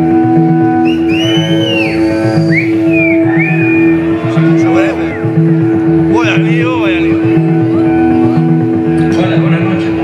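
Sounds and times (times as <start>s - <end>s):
live rock band playing: 0.0s - 10.0s
swooping lead guitar line: 0.0s - 10.0s.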